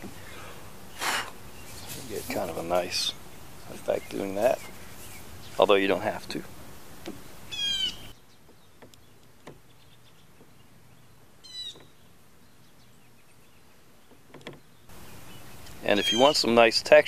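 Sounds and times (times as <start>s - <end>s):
songbird chirping: 0.0s - 17.0s.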